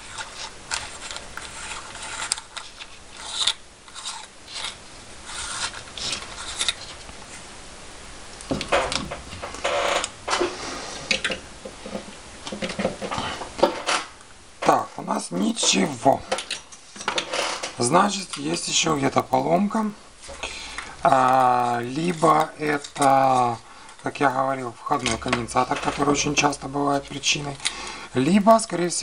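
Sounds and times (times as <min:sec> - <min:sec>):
plastic rubbing and scraping: 0:00.0 - 0:07.4, 0:08.5 - 0:27.6.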